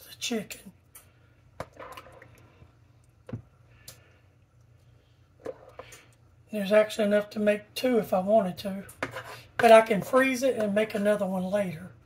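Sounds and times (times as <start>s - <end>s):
spoon stirring thick wet filling: 0.8s - 6.4s, 8.8s - 11.1s.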